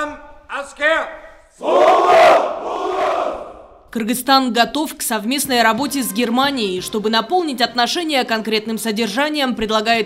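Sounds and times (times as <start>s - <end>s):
group shouting in unison: 1.6s - 3.7s.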